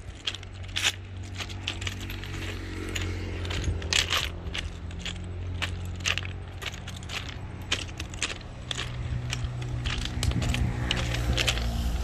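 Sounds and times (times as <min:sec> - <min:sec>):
footsteps crunching on ballast stones: 0:00.0 - 0:12.0.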